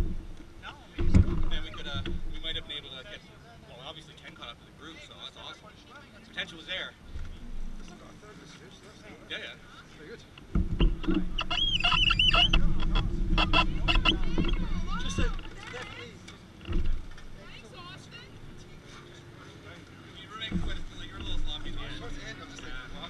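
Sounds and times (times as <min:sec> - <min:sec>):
voices: 0:00.0 - 0:23.0
kart engine running: 0:10.7 - 0:18.8.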